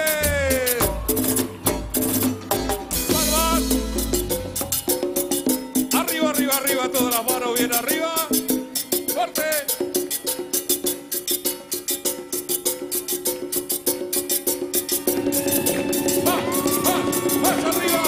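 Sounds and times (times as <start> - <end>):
person singing: 0.0 - 1.2, 3.0 - 4.1, 15.1 - 18.0
accordion chords: 0.0 - 5.0
bass: 0.0 - 5.0
congas: 0.0 - 18.0
quick steady percussion beat: 0.0 - 18.0.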